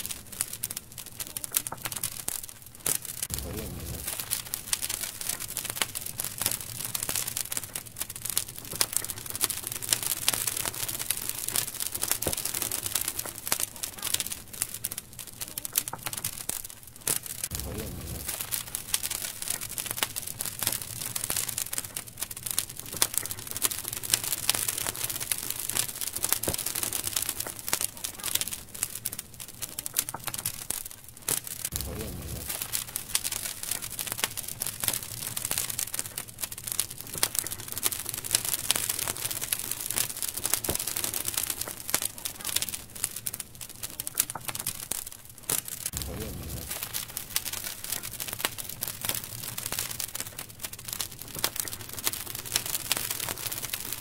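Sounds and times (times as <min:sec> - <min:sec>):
bonfire crackling and popping: 0:00.0 - 0:54.0
fire hissing: 0:00.0 - 0:54.0
low rumble: 0:03.3 - 0:04.5, 0:17.5 - 0:18.8, 0:31.7 - 0:32.9, 0:46.0 - 0:47.2.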